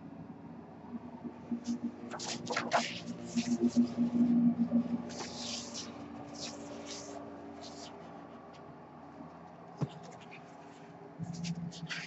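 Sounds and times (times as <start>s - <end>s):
paper prints rustling and sliding: 1.6s - 4.2s, 5.0s - 8.2s.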